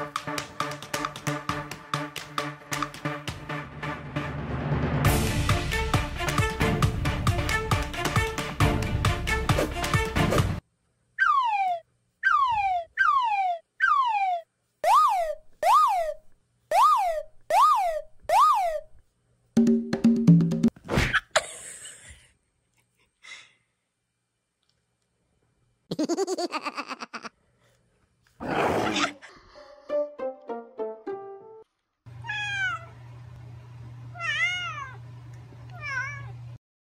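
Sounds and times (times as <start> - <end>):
cartoon whistle sliding downward: 11.2 - 18.9
plucked melody: 29.9 - 31.6
cat meowing: 32.2 - 32.9, 34.1 - 35.0, 35.7 - 36.4.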